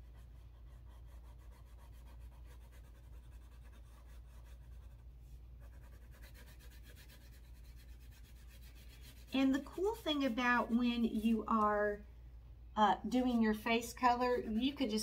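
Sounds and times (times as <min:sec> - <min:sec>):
crayon rubbing on paper: 0:00.0 - 0:05.0, 0:05.6 - 0:10.8, 0:13.1 - 0:15.0.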